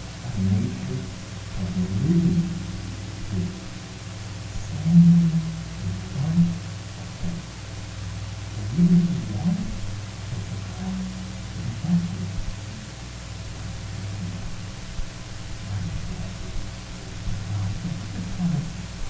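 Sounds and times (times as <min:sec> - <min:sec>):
muffled man talking: 0:00.2 - 0:07.4, 0:08.5 - 0:13.0, 0:13.6 - 0:14.7, 0:15.6 - 0:19.0.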